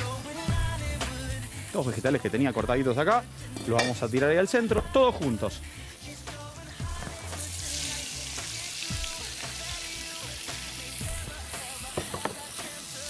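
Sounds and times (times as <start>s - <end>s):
meat searing in a pan: 0.0s - 13.0s
vegetables sizzling in hot oil: 0.0s - 13.0s.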